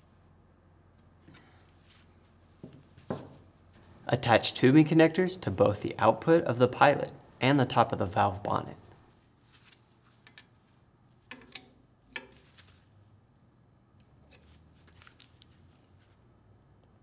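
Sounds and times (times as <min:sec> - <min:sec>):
small metallic taps of fittings: 0:11.3 - 0:12.5.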